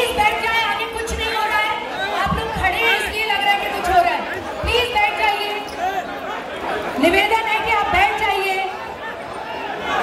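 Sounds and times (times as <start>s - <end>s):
crowd shouting and talking: 0.0s - 10.0s.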